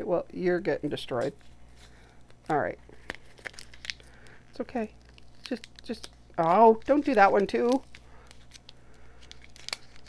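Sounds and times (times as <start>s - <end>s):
paper stickers peeling: 1.2s - 10.0s.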